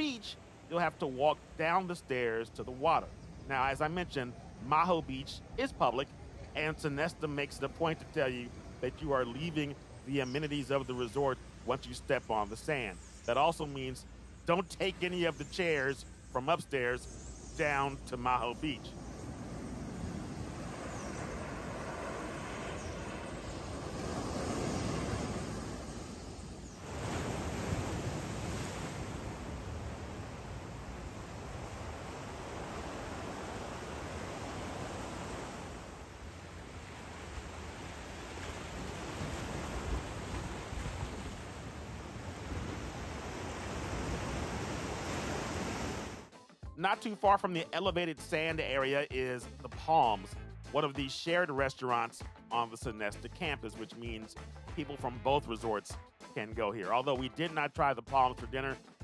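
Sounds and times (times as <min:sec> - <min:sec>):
small waves washing on sand: 0:17.6 - 0:46.3.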